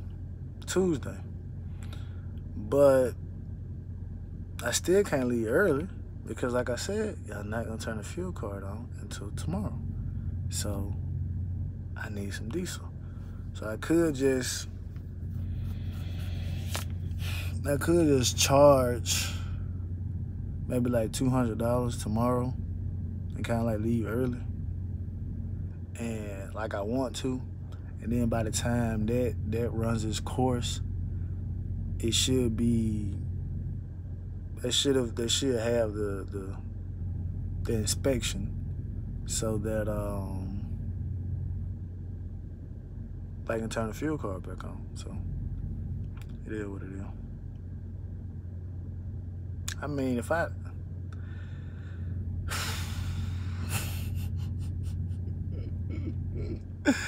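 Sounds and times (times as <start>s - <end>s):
diesel engine idling: 0.0s - 57.0s
person breathing: 1.7s - 2.4s, 15.3s - 17.6s, 51.2s - 55.0s.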